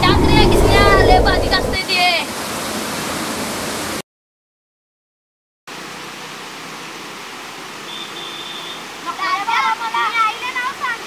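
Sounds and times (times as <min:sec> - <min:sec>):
stream water rushing: 0:00.7 - 0:04.0, 0:05.7 - 0:11.0.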